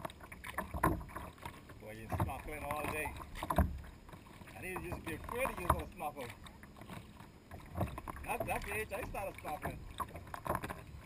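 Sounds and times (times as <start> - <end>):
paddle dipping into water: 0.0 - 11.0
water washing against hull: 0.0 - 11.0.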